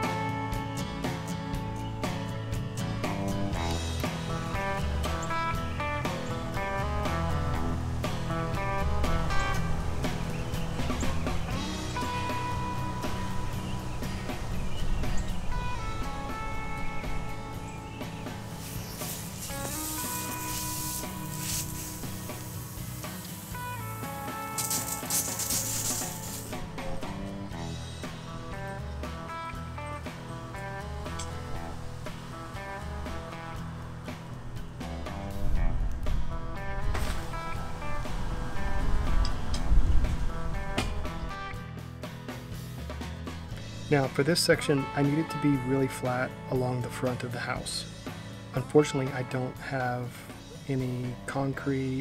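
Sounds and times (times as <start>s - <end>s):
music with plucked notes: 0.0s - 52.0s
low rumbling: 2.6s - 41.5s
hissing rush: 9.1s - 28.2s.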